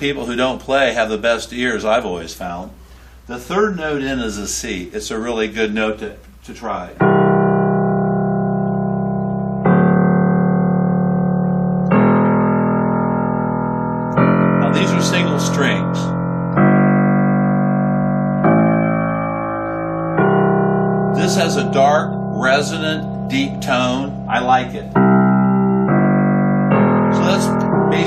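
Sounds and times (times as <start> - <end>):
deep piano bass notes: 6.9 - 28.0.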